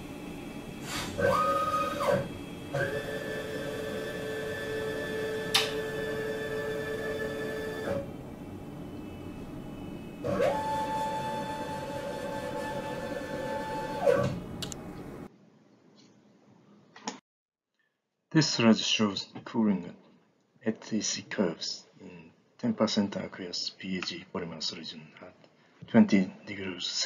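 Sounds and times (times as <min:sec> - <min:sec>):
electric actuator motors whining: 0:00.0 - 0:15.3
sharp click: 0:14.6 - 0:14.8.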